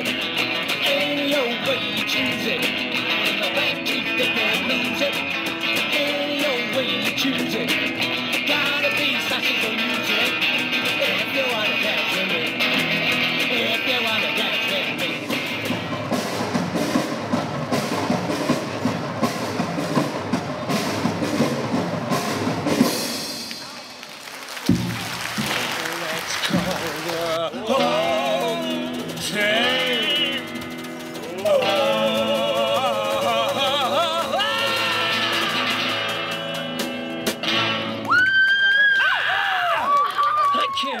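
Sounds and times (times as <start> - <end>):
drum kit with cymbals: 0.0 - 24.0, 24.7 - 37.8
electric guitar: 0.0 - 24.1, 24.7 - 40.7
band chord with guitar: 24.8 - 38.0.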